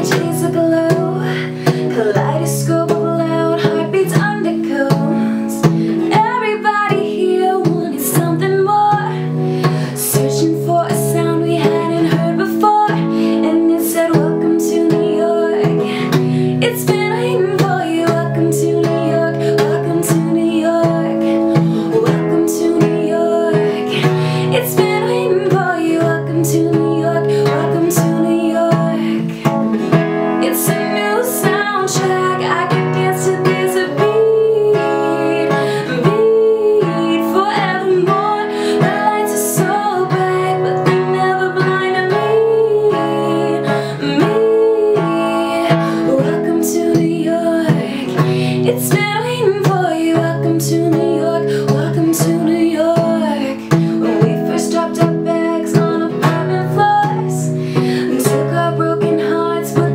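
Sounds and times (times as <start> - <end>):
strummed acoustic guitar: 0.0 - 59.9
woman singing a pop song: 0.0 - 59.9.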